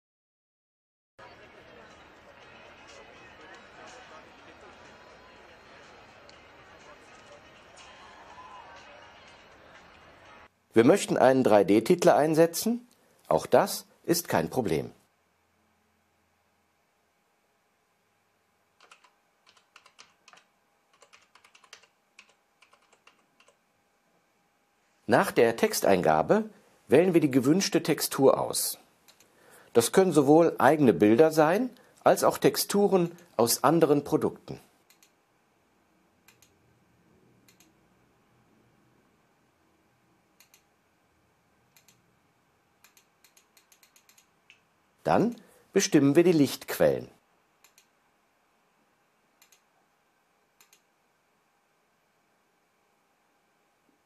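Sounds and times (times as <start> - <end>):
computer mouse clicks: 18.8 - 23.6, 29.1 - 29.3, 34.9 - 35.2, 36.2 - 36.6, 37.4 - 37.8, 40.4 - 40.7, 41.7 - 42.0, 42.8 - 44.6, 47.6 - 47.9, 49.4 - 49.7, 50.6 - 50.9
keyboard typing: 18.8 - 23.6, 42.8 - 44.6.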